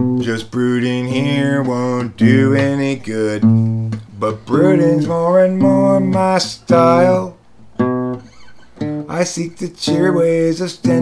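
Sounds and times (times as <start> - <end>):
man singing: 0.0 - 7.4, 9.1 - 11.0
acoustic guitar: 0.0 - 11.0.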